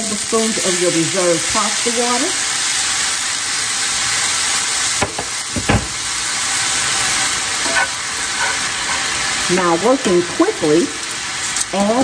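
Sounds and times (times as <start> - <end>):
pasta water sizzling in skillet: 0.0 - 12.0
metal tongs knocking on pan: 5.0 - 6.0.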